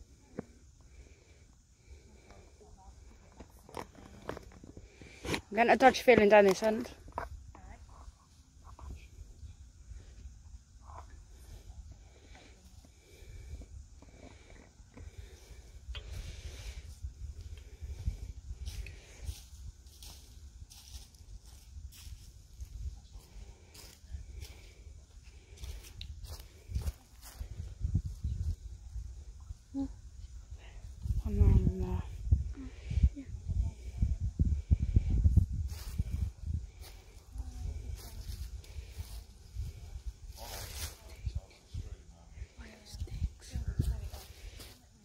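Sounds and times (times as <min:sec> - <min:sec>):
low rumble on microphone: 0:08.7 - 0:44.6
footsteps on leaf litter and twigs: 0:18.6 - 0:24.6.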